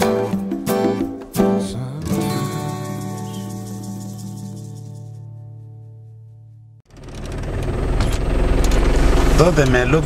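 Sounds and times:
vehicle engine and road rumble: 6.9s - 10.0s.

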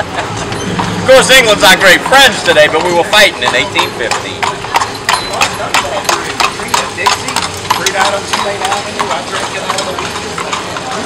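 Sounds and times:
hooves clip-clopping on pavement: 0.0s - 11.0s.

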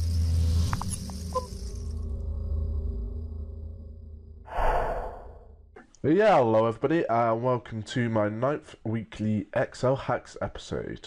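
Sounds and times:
deep low drone: 0.0s - 5.7s.

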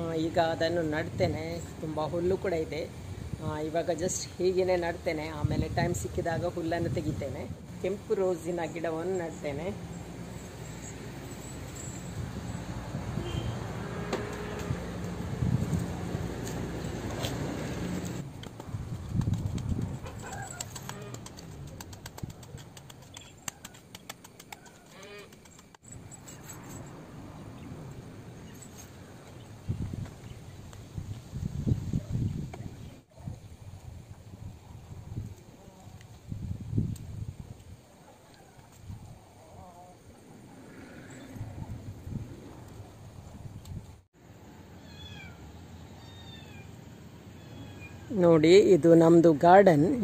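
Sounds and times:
outdoor background noise: 0.0s - 50.0s.

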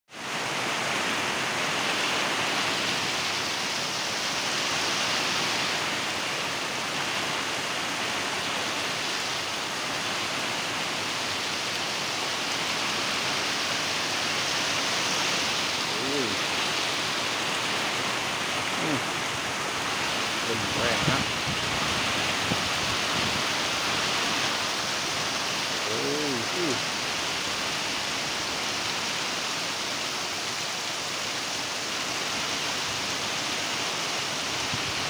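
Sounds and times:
heavy rain on corrugated roof: 0.1s - 35.0s
water streaming off eaves: 0.1s - 35.0s.

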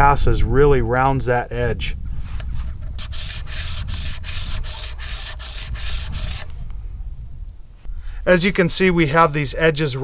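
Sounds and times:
stone grinding on wet sandstone: 3.0s - 6.5s.

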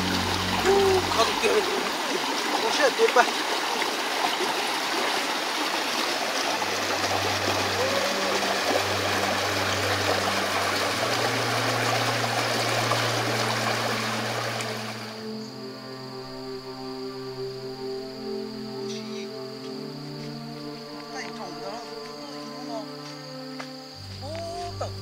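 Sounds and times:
music with sustained low notes: 0.0s - 3.2s, 6.3s - 25.0s
stream running over rocks: 0.0s - 15.2s.

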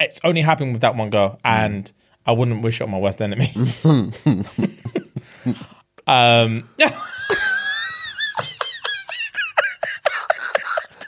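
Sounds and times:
men laughing hard: 3.4s - 5.7s, 6.8s - 11.0s.

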